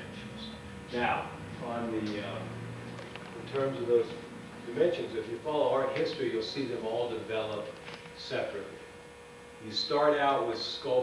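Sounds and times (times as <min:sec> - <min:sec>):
steady electrical hum: 0:00.0 - 0:11.0
man speaking: 0:03.4 - 0:08.8.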